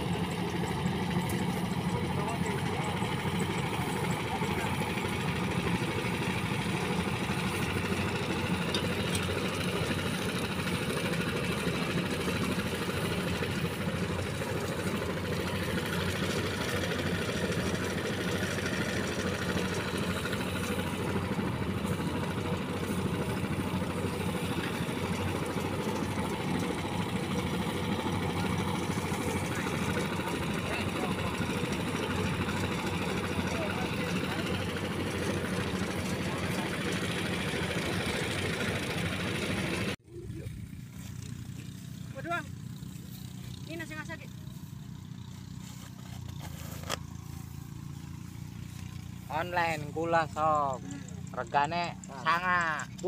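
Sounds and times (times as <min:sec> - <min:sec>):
thresher engine running: 0:00.0 - 0:53.0.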